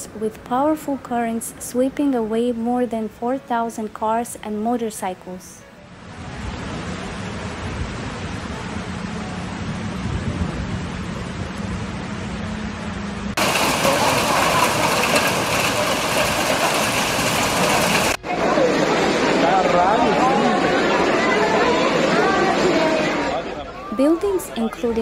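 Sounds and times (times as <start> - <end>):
heavy rain and floodwater rushing: 6.0 - 11.8, 13.4 - 23.5
person's voice: 23.9 - 25.0.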